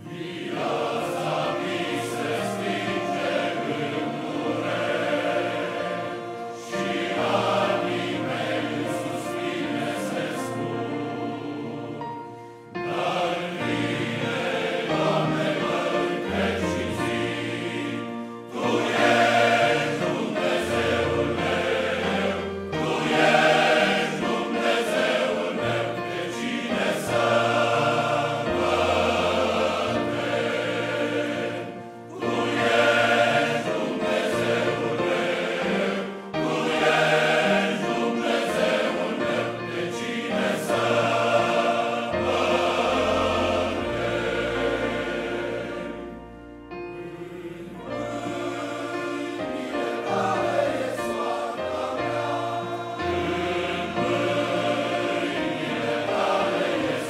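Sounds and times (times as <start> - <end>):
men's choir singing a hymn: 0.0 - 57.0.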